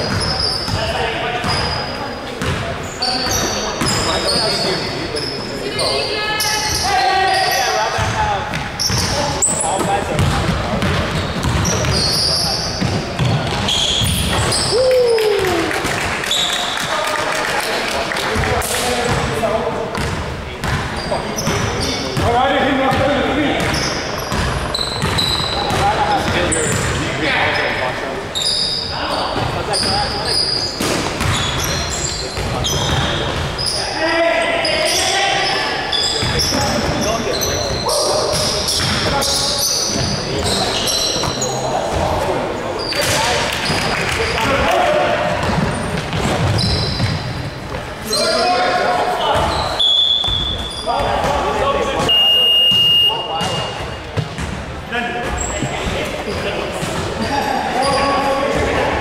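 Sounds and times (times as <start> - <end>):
sneaker squeaks: 0.0 - 15.6, 16.2 - 17.0, 20.0 - 44.6, 45.3 - 58.9
players calling out: 0.0 - 20.1
basketball bouncing on hardwood floor: 10.2 - 12.0, 23.6 - 25.9.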